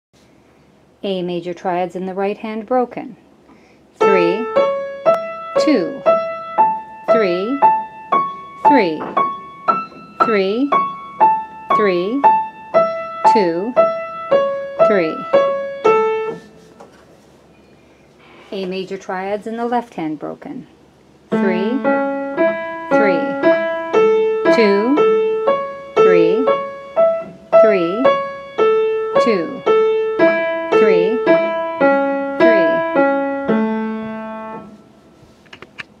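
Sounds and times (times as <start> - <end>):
piano note ringing: 4.0 - 16.6, 21.3 - 34.8.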